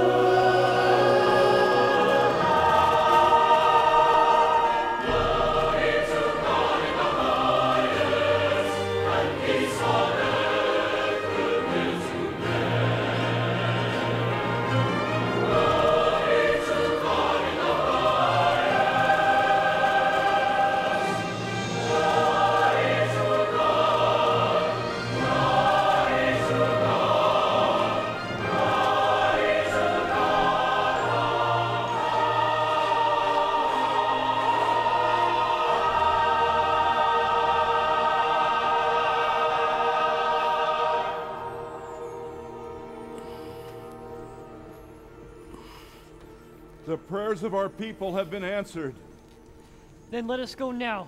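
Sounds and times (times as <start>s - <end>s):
choir singing: 0.0s - 49.4s.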